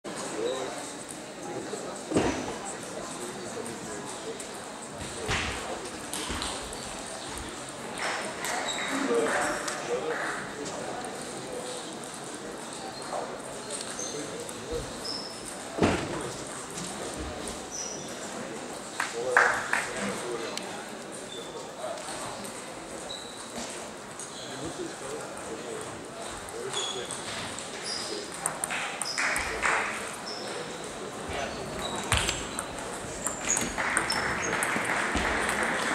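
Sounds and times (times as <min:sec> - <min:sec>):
table tennis balls clicking: 0:27.1 - 0:30.2, 0:31.8 - 0:35.9.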